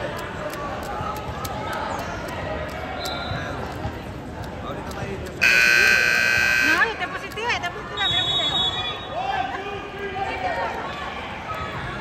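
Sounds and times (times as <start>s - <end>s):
many voices talking: 0.0s - 12.0s.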